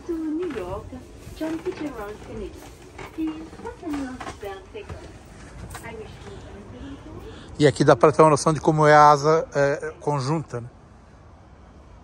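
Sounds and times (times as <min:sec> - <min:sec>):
people talking indistinctly: 0:00.0 - 0:10.7.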